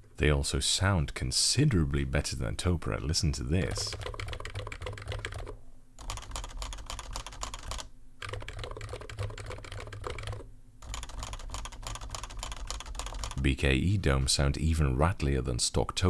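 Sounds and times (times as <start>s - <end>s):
fast typing on keyboard: 3.6s - 13.4s.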